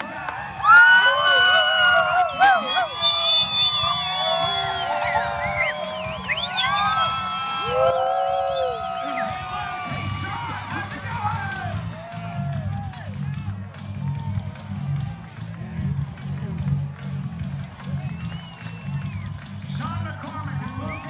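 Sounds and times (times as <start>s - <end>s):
crowd yelling and screaming: 0.0s - 15.7s, 17.9s - 21.0s.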